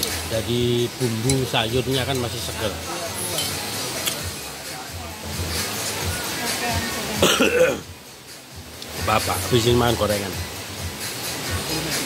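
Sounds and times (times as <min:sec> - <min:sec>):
background music: 0:00.0 - 0:12.0
person coughing: 0:07.2 - 0:07.9.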